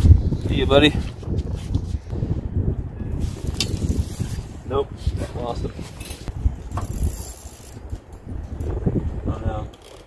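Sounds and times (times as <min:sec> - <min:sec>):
wind buffeting microphone: 0:00.0 - 0:09.8.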